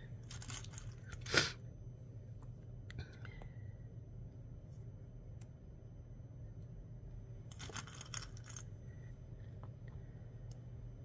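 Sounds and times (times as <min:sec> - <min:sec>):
crinkly crunch: 0:00.2 - 0:01.3, 0:07.5 - 0:08.7.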